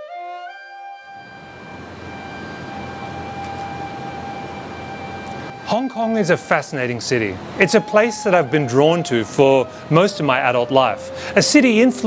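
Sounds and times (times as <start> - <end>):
wash of noise: 1.2 - 12.0.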